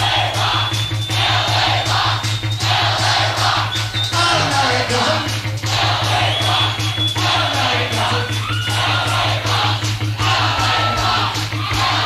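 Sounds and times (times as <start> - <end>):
drum beat: 0.0 - 12.0
guitars: 0.0 - 12.0
heavy bass: 0.0 - 12.0
live rock band playing: 0.2 - 12.0.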